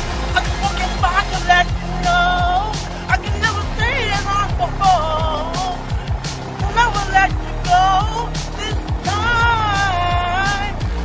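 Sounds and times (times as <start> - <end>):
drum machine beat: 0.0 - 11.0
man singing: 0.0 - 11.0
synth-pop music: 0.0 - 11.0.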